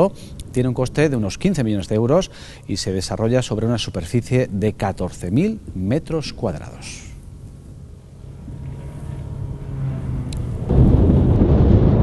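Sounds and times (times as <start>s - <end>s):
faint steady low hum: 0.0s - 11.4s
wind buffeting microphone: 9.6s - 12.0s.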